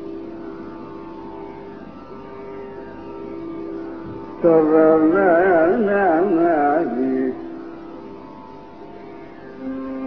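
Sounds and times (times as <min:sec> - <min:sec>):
recording hiss: 0:00.0 - 0:10.0
steady drone: 0:00.0 - 0:10.0.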